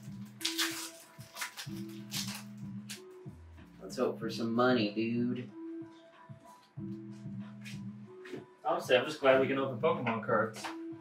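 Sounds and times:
music with low notes: 0:00.0 - 0:11.0.

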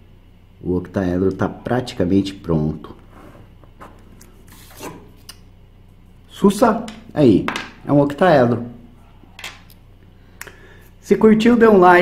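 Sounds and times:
ruler scraping off paper: 0:04.5 - 0:05.2.

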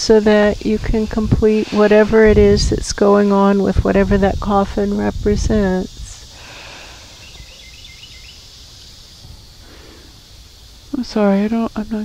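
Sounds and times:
faint high hiss: 0:00.0 - 0:12.0
small bird chirps: 0:07.0 - 0:11.1.

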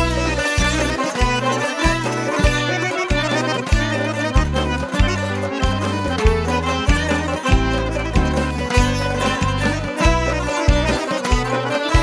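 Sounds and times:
lutes and bowed strings playing: 0:00.0 - 0:12.0
strong low beat: 0:00.0 - 0:12.0.

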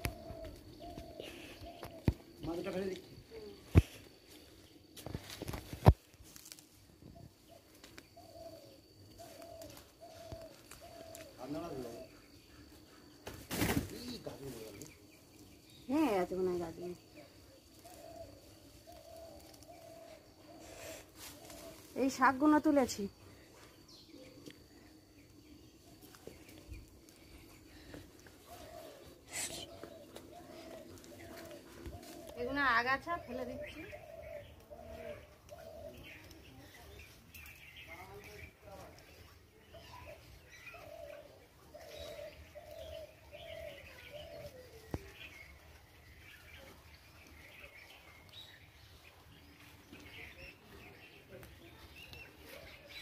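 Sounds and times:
dove cooing: 0:00.0 - 0:02.5, 0:07.0 - 0:13.1, 0:17.0 - 0:22.0, 0:24.0 - 0:37.8, 0:39.1 - 0:53.0
bird calling: 0:00.0 - 0:04.8, 0:07.0 - 0:53.0.

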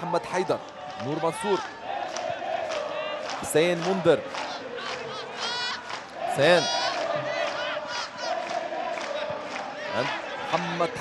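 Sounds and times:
stadium crowd shouting and chanting: 0:00.0 - 0:11.0
voices rising above crowd: 0:00.0 - 0:11.0.

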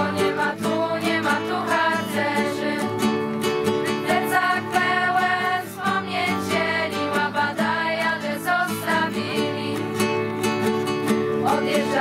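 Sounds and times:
girls singing together: 0:00.0 - 0:03.2, 0:03.9 - 0:10.2, 0:11.4 - 0:12.0
strummed acoustic guitar: 0:00.0 - 0:12.0.

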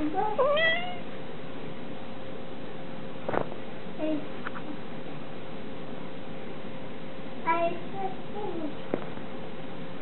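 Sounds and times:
meow-like call: 0:00.4 - 0:01.0.

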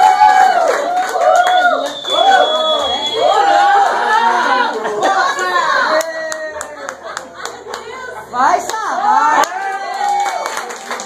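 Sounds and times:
loud excited shout: 0:00.0 - 0:07.0, 0:08.9 - 0:10.6
group clapping: 0:00.0 - 0:11.0
excited overlapping voices: 0:01.2 - 0:10.3.

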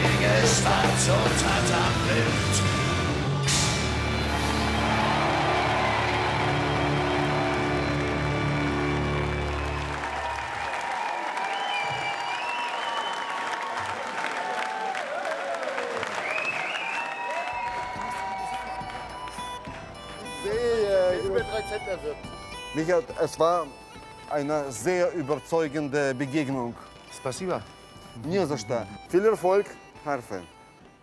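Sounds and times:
crowd cheering and applauding: 0:03.5 - 0:21.6.

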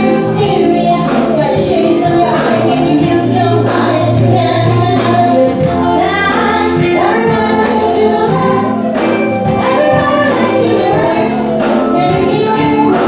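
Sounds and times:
female voices singing together: 0:00.0 - 0:13.0
live pop band playing: 0:00.0 - 0:13.0.

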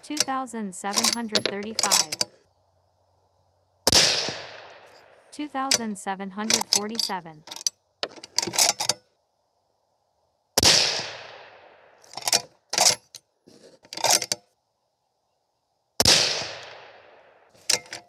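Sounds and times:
spent brass handled: 0:00.0 - 0:02.4, 0:04.8 - 0:09.0, 0:17.6 - 0:18.0
rifle shots with echo: 0:03.9 - 0:05.2, 0:10.6 - 0:12.0, 0:16.0 - 0:17.4.

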